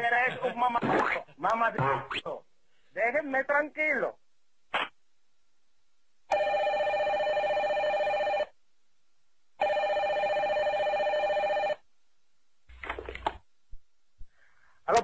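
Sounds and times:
telephone ringing: 6.3s - 8.5s, 9.6s - 11.8s.

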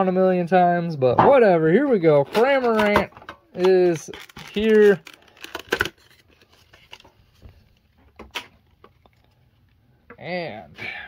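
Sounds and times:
plastic packaging rustling: 2.2s - 9.3s
packaging crinkle: 3.6s - 7.7s.

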